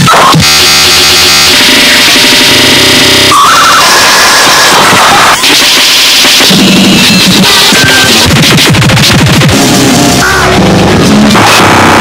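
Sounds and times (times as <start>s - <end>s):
harsh electronic noise music: 0.0s - 12.0s.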